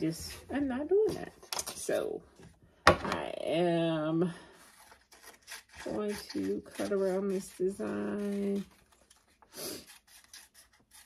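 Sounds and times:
paper rustling: 4.6 - 11.0.

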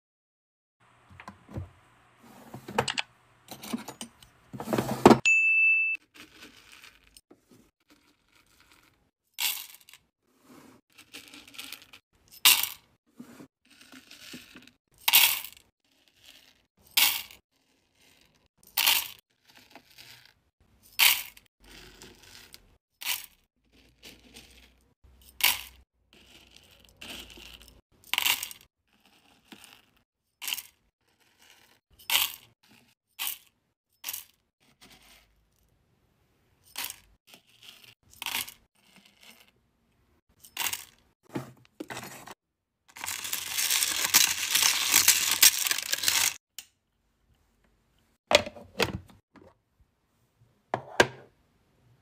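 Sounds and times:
spoon scraping through beads: 6.0 - 35.5, 36.7 - 39.6, 41.9 - 46.4
wax beads clattering into metal pot: 42.9 - 46.4.

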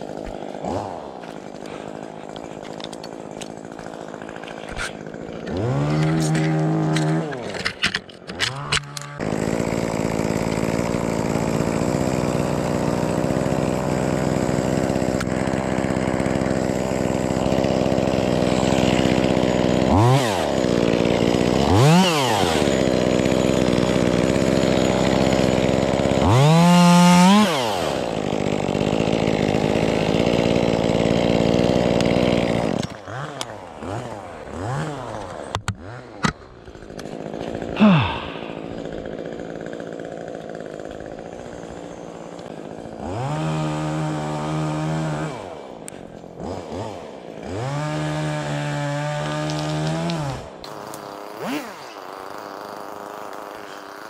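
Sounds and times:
chainsaw running: 0.0 - 54.0.

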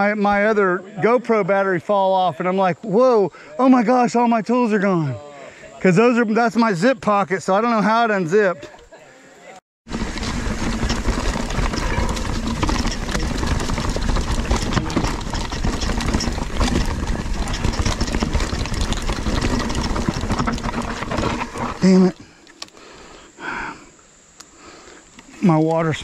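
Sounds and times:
chain and frame rattling: 9.9 - 22.2
bike tyre noise on dirt: 9.9 - 23.9.

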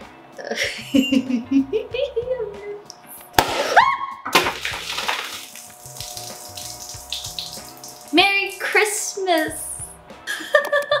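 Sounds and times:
sparkling wine fizzing: 4.5 - 8.6.

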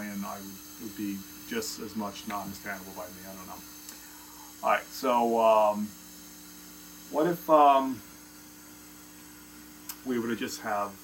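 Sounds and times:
electrical mains hum: 0.0 - 11.0
faint hiss: 0.0 - 11.0.

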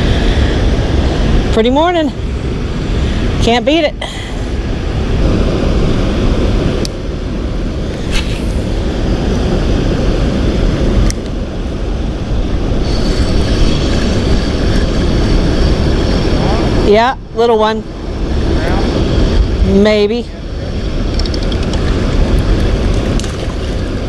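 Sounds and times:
sharp clicks: 21.1 - 21.8.

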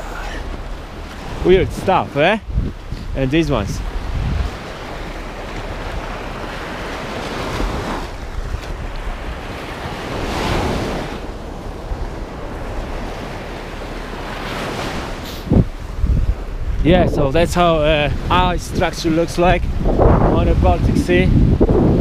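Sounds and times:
sea waves on shore: 0.0 - 22.0
wind buffeting microphone: 0.0 - 22.0.

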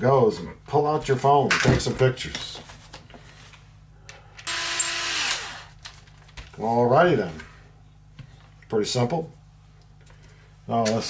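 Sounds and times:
electric screwdriver whirring: 4.5 - 5.7.

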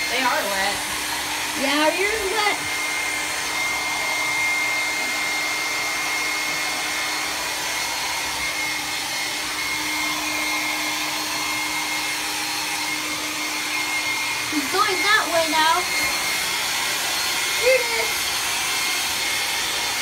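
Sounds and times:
blow dryer running: 0.0 - 20.0.

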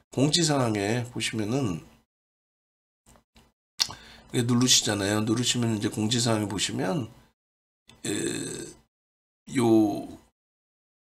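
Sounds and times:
mouth click: 3.8 - 4.1.

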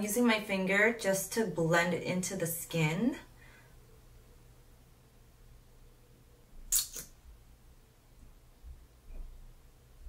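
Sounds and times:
applicator wand drawn from tube: 6.7 - 7.1
lip gloss cap pulled off: 6.7 - 7.1.

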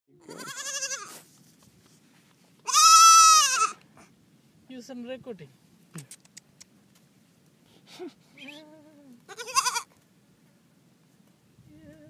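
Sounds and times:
baby goat bleating: 0.2 - 1.2, 2.6 - 3.8, 8.7 - 10.0.

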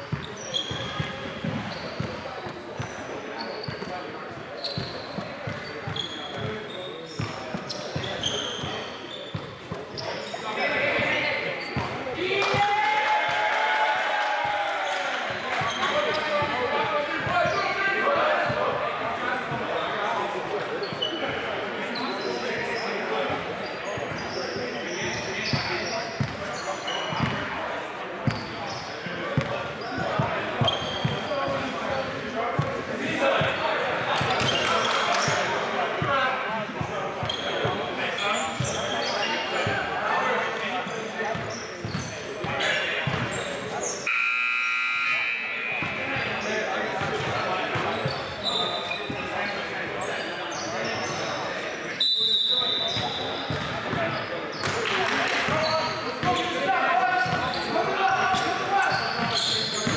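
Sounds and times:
indistinct talking: 0.0 - 59.9.

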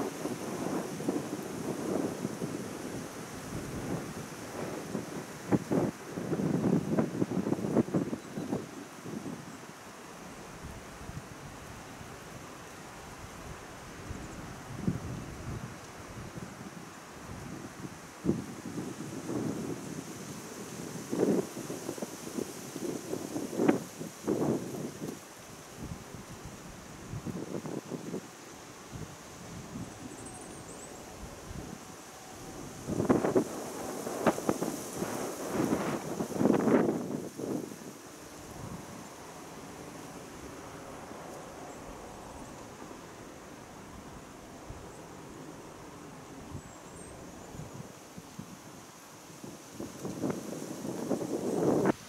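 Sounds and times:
wind buffeting microphone: 0.0 - 9.5, 13.1 - 52.0
faint hiss: 0.0 - 52.0.

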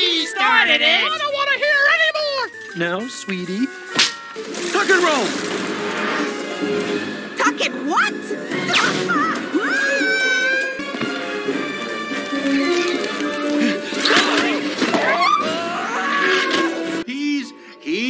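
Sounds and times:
cartoon music: 0.0 - 5.3, 6.5 - 17.0
sharp whip-like hits: 3.9 - 4.3.

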